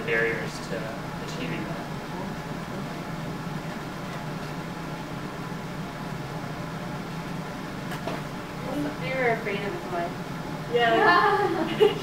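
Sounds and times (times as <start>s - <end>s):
ventilation hum with hiss: 0.0s - 12.0s.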